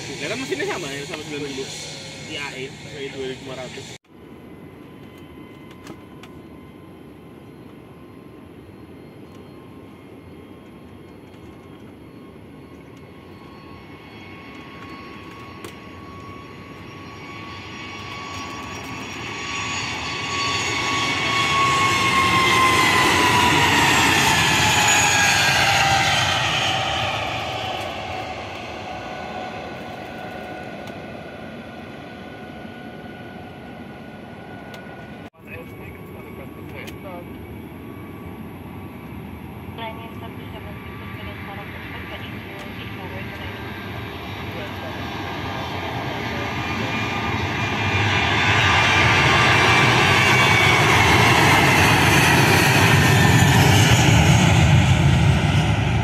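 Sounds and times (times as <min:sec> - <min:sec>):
jet engines rumble and whine: 0:00.0 - 0:56.0.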